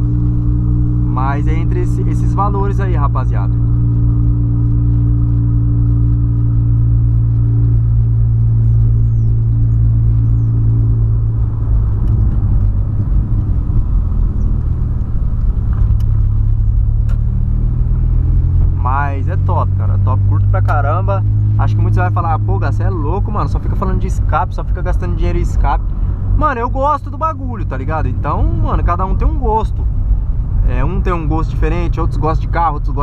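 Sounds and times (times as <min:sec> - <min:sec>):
car engine and exhaust droning: 0:00.0 - 0:33.0.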